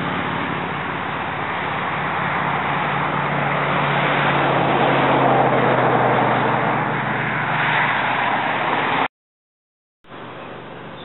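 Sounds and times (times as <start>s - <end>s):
low engine hum: 0.0s - 9.1s, 10.1s - 11.0s
steady rushing noise: 0.0s - 9.1s.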